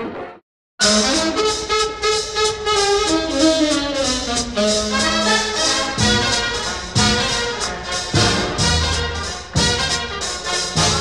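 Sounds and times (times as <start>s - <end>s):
brass section playing chords: 0.8s - 11.0s
steady beat: 0.8s - 11.0s.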